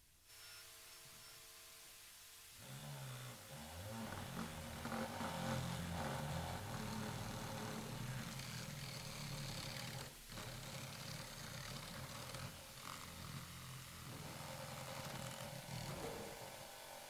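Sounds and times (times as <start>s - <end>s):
low grainy purring rumble: 2.6s - 17.0s.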